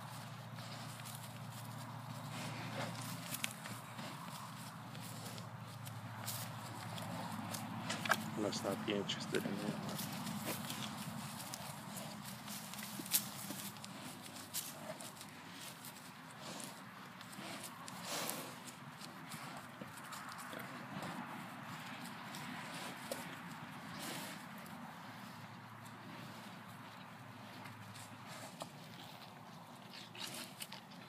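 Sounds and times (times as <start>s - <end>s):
hooves shuffling on grass: 0.0s - 31.0s.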